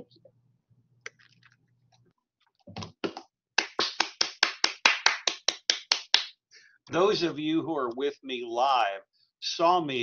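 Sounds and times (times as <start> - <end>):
person clapping: 3.0 - 6.4.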